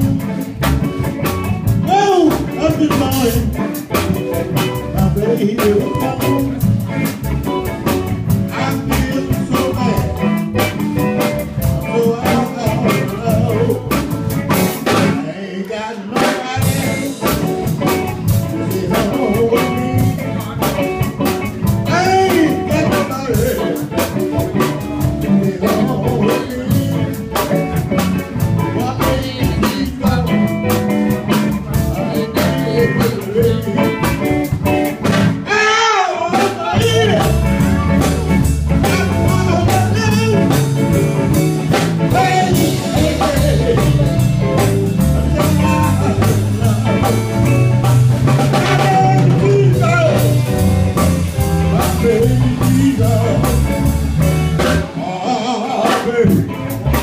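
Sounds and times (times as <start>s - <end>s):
drum kit: 0.0s - 15.4s, 16.0s - 57.0s
bass guitar: 0.0s - 57.0s
electric guitar: 0.0s - 57.0s
person singing: 1.7s - 7.6s, 8.3s - 34.8s, 35.4s - 57.0s.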